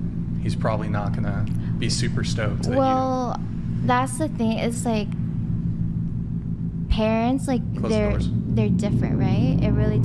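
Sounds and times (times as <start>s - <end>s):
low background hum and rumble: 0.0s - 10.0s.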